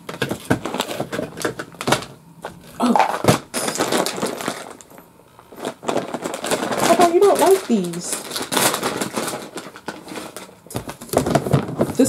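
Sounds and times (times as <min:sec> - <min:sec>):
plastic bags crinkling: 0:00.0 - 0:12.0
plastic bin clicks and knocks: 0:10.7 - 0:12.0.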